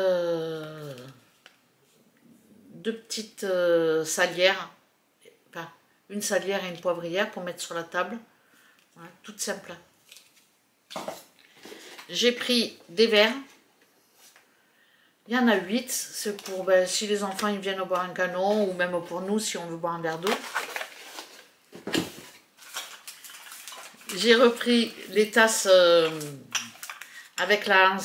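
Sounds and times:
packaging rustling: 10.0s - 12.1s, 16.2s - 19.1s, 20.0s - 27.4s
glass clinking in plastic packaging: 26.0s - 27.6s.

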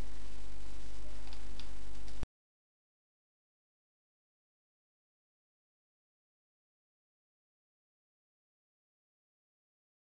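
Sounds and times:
low hum and hiss: 0.0s - 2.3s.

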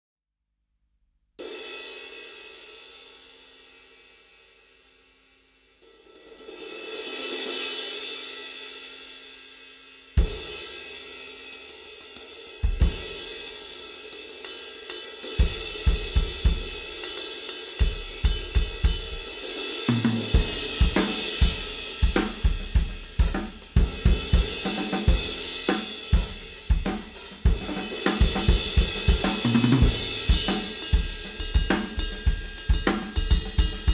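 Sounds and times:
drum kit groove: 10.2s - 33.9s.

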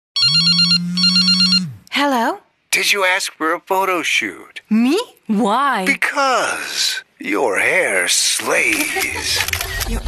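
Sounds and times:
electronic telephone ringing: 0.2s - 1.8s.

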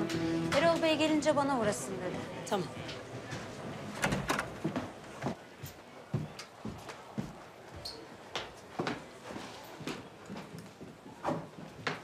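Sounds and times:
heeled footsteps on wooden floor: 4.6s - 12.0s.

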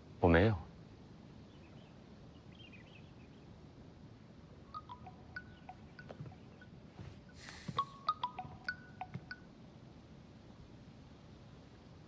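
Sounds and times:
faint outdoor hum: 0.0s - 12.0s
mallet percussion music: 4.8s - 6.7s, 7.7s - 9.4s
high bird chirps: 4.8s - 6.8s, 7.4s - 9.4s.

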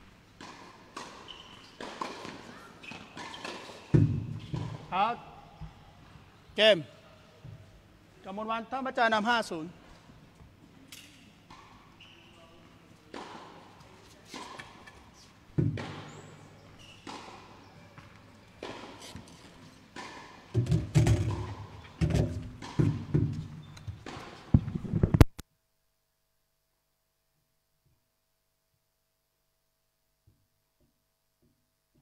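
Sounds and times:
tennis balls bouncing and struck: 0.4s - 5.0s, 10.9s - 11.9s, 13.1s - 25.2s.

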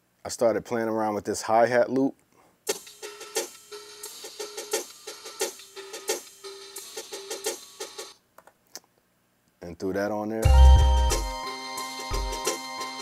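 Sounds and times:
crisp hi-hat loop: 2.7s - 8.2s, 10.4s - 13.0s.

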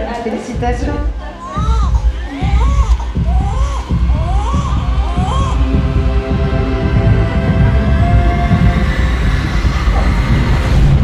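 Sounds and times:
steady hum: 0.6s - 11.0s
newborn baby crying: 1.2s - 5.9s
low pulsing rumble: 1.7s - 11.0s.

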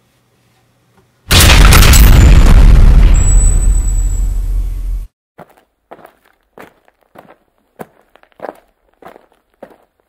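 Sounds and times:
loud boom with deep rumble: 1.3s - 5.1s.

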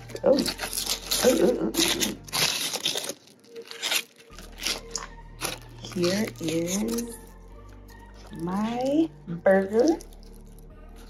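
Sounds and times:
foil wrapper crinkling: 0.0s - 11.0s.

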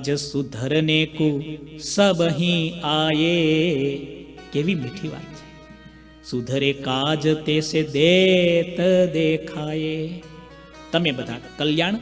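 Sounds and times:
man singing chant-like melody: 0.0s - 5.4s, 6.2s - 10.4s.

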